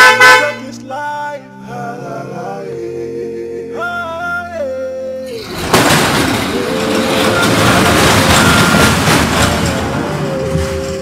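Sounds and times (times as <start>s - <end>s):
background music with sung note: 0.0s - 11.0s
steel gate scraping open: 5.3s - 11.0s.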